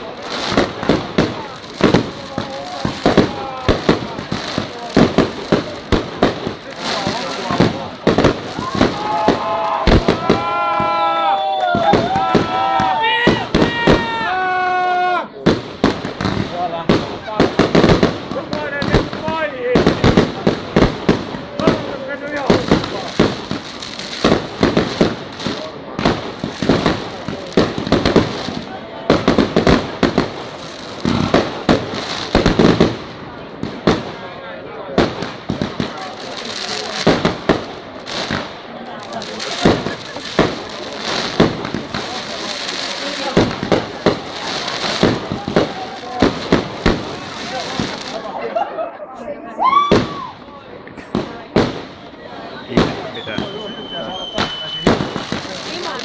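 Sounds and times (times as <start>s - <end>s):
fireworks hiss and crackle: 0.0s - 48.7s, 49.7s - 56.0s
fireworks bursting: 0.0s - 48.8s, 49.6s - 56.0s.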